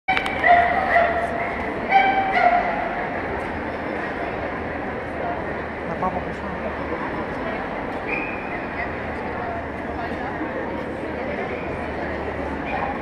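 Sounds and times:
crowd chatter: 0:00.1 - 0:13.0
dog yipping: 0:00.2 - 0:01.3, 0:01.9 - 0:02.9.

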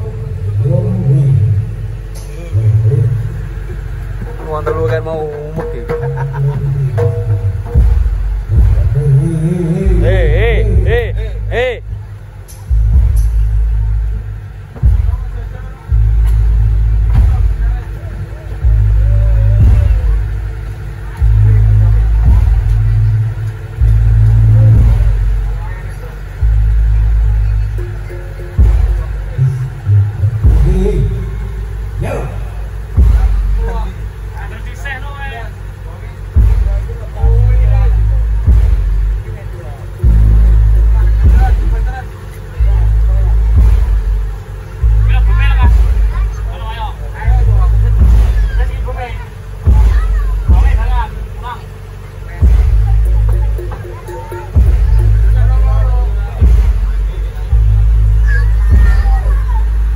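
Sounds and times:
deep booms: 0:00.0 - 0:51.4, 0:52.4 - 0:53.9, 0:54.5 - 0:59.9
faint voices: 0:00.0 - 0:59.9
gamelan music: 0:01.7 - 0:09.6, 0:10.2 - 0:34.3, 0:49.4 - 0:59.9.

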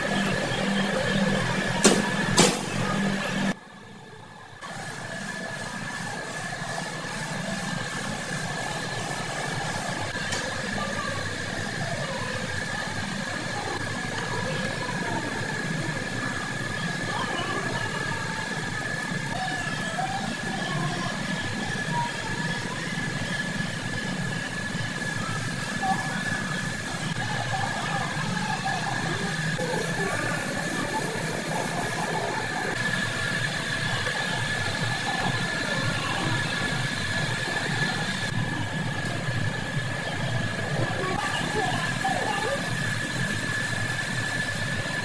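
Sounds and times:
high-pitched machine whine: 0:00.0 - 0:03.9, 0:04.5 - 0:45.0.

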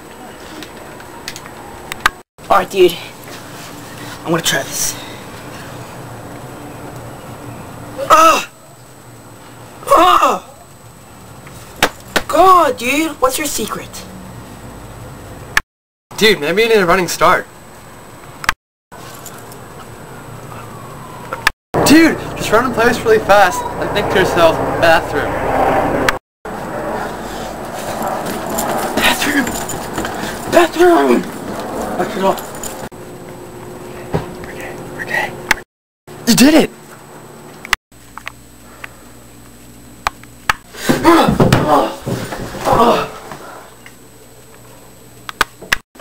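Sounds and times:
running footsteps on porch floor: 0:27.6 - 0:33.4, 0:40.8 - 0:43.5.

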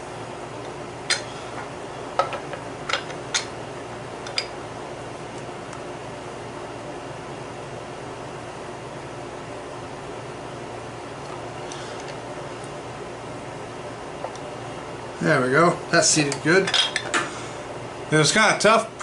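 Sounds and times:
room hum: 0:00.0 - 0:19.0.

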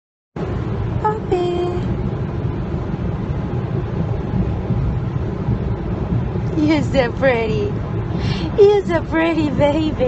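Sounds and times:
car rumble heard from inside: 0:00.4 - 0:10.0.

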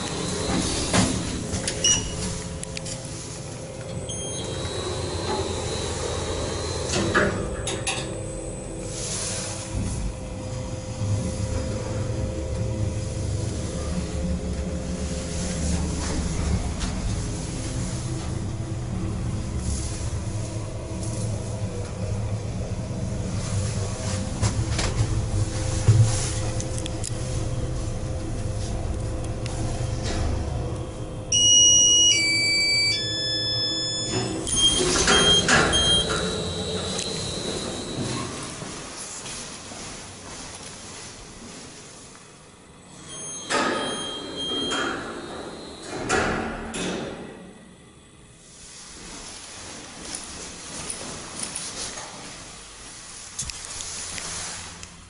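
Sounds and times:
lift arrival chime: 0:00.0 - 0:09.9, 0:29.5 - 0:39.0, 0:42.9 - 0:46.0
thin high whine: 0:00.0 - 0:14.2, 0:25.5 - 0:41.6
lift car rumbling hum: 0:00.0 - 0:55.0
short electronic beep: 0:04.1 - 0:05.2, 0:31.3 - 0:38.3.

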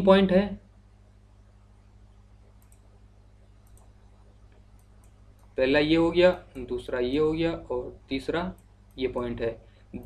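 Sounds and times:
low electrical hum: 0:00.0 - 0:10.0
computer mouse clicks: 0:02.4 - 0:05.6.

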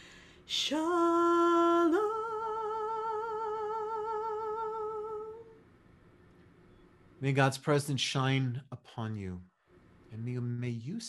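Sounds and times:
low background noise: 0:00.0 - 0:11.0
woman singing with vibrato: 0:00.5 - 0:05.6.

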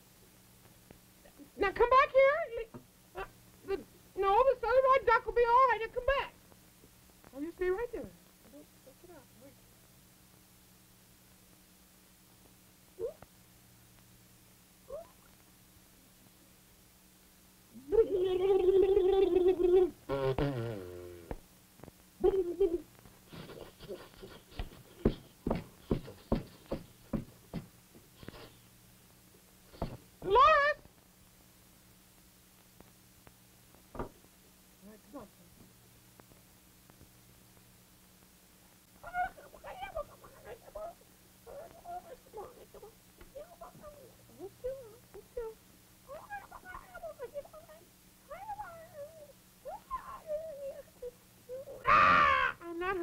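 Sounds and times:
faint hiss: 0:00.0 - 0:53.0
high squeaky puppet voice: 0:46.1 - 0:53.0.

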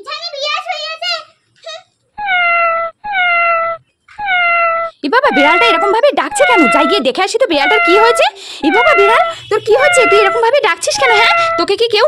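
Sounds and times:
toy cat electronic meows: 0:02.2 - 0:11.7.

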